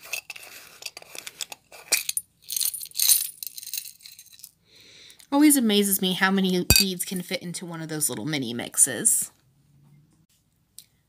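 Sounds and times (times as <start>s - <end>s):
beads rattling onto a mat: 0.1s - 4.6s.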